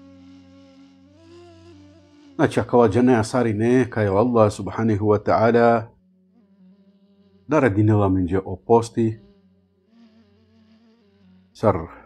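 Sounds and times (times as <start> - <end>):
faint steady tonal hum: 0.0 - 12.0
man speaking: 2.4 - 5.9, 7.5 - 9.2, 11.6 - 12.0.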